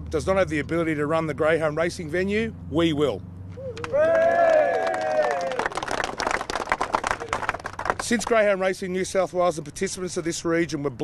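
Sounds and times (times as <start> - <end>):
crowd applauding: 3.6 - 8.4.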